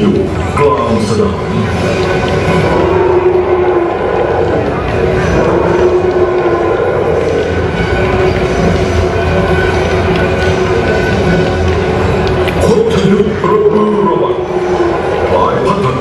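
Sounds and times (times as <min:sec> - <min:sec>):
long droning held tones: 0:00.0 - 0:16.0
steady low rumble: 0:00.0 - 0:16.0
voice over public address: 0:12.6 - 0:14.6, 0:15.2 - 0:16.0.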